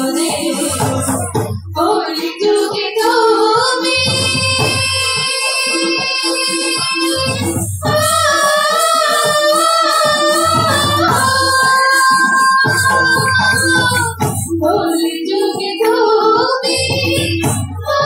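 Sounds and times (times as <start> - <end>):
drum rhythm: 0.0 - 18.0.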